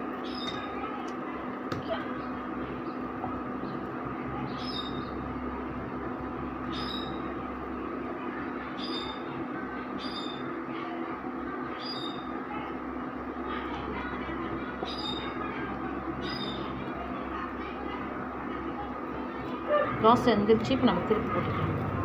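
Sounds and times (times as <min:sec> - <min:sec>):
induction cooktop humming: 0:00.0 - 0:22.0.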